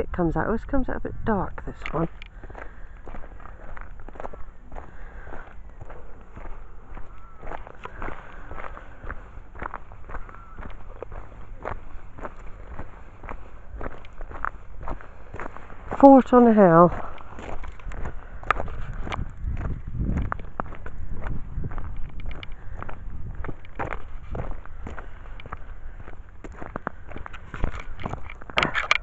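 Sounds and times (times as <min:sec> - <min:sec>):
footsteps crunching on gravel: 0:01.7 - 0:29.0
wind rumble on microphone: 0:16.9 - 0:29.0.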